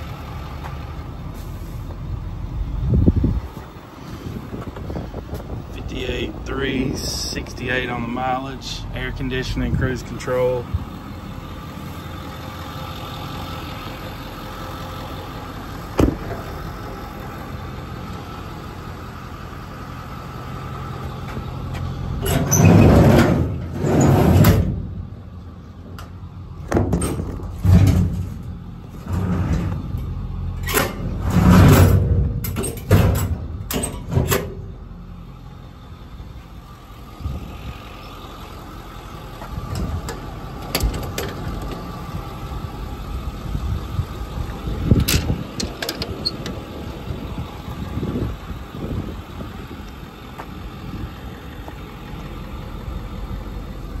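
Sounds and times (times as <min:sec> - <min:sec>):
diesel engine idling: 0:00.0 - 0:54.0
loud thumps: 0:16.0 - 0:16.6.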